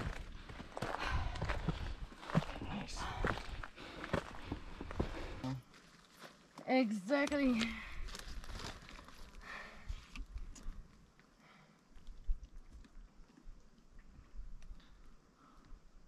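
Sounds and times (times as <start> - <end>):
plastic water bottle crinkling: 8.1 - 9.4.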